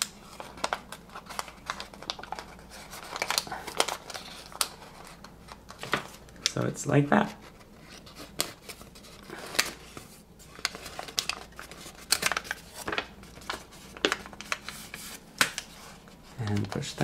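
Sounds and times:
paper crinkling and snapping: 0.0s - 17.0s.

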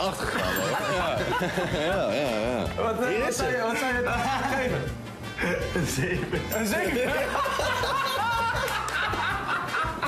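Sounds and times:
young men laughing: 0.0s - 2.8s, 4.0s - 10.0s
background music: 0.0s - 10.0s.

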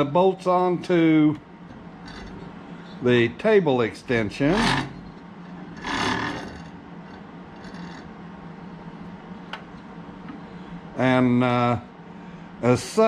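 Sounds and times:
metal bar scraping: 2.0s - 3.0s, 4.4s - 8.2s.

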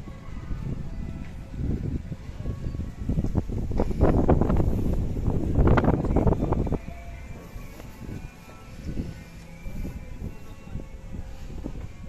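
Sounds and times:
faint background music: 0.0s - 12.0s
wind buffeting microphone: 0.0s - 12.0s.

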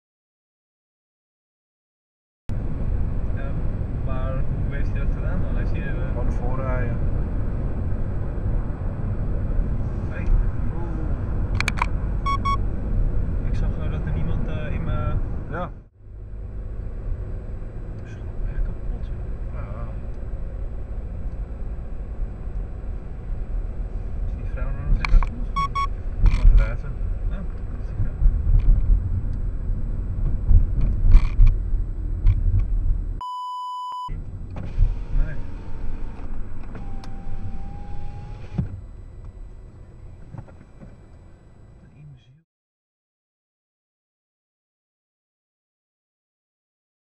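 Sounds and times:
car road and engine rumble: 2.5s - 42.4s.

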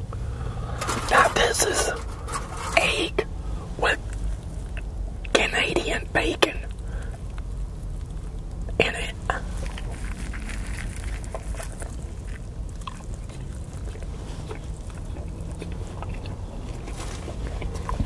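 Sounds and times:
low steady hum: 0.0s - 18.0s
soft chewing: 0.7s - 5.5s, 6.5s - 18.0s.

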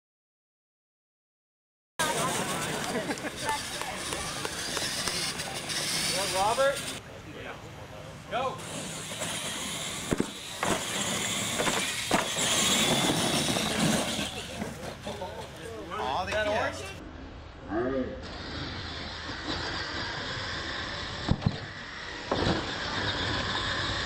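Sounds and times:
toy truck motors whining: 2.0s - 7.0s, 8.6s - 15.7s, 18.2s - 24.0s
people's voices: 2.0s - 9.1s, 13.3s - 17.0s.

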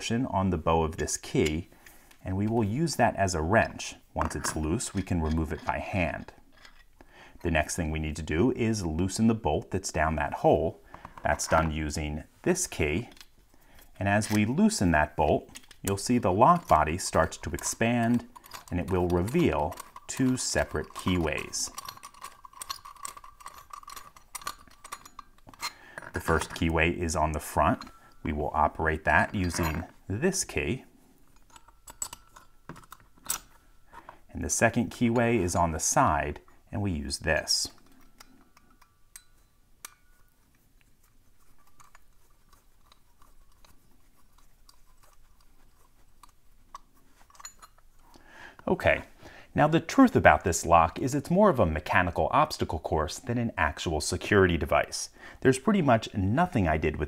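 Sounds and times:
keys clinking: 12.6s - 35.9s, 37.4s - 48.1s
key turning in padlock: 15.5s - 28.2s, 31.3s - 33.7s, 40.9s - 48.1s.

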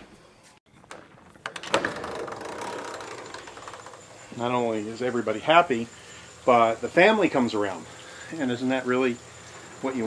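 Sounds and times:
sliding door rumbling on track: 1.6s - 4.0s.

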